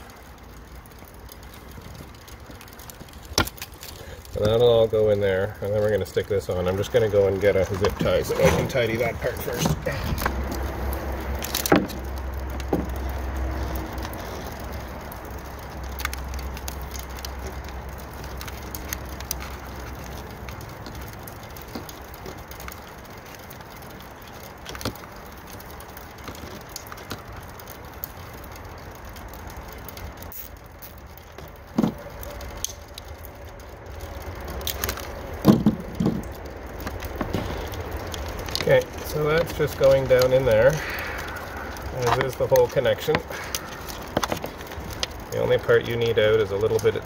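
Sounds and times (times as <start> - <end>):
wire rustling and clicking: 0.0 - 47.0.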